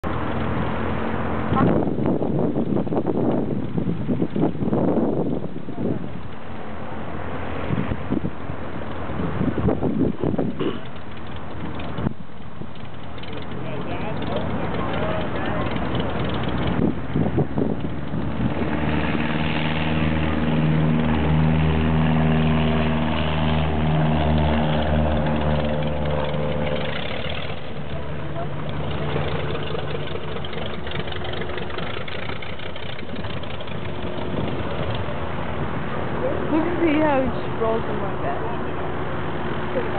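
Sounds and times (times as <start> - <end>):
propeller plane engine drone: 0.0 - 39.9.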